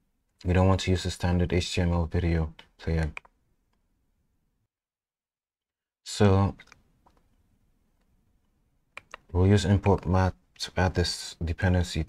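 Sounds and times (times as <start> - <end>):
person speaking: 0.4 - 3.3, 6.1 - 6.8, 9.0 - 12.0.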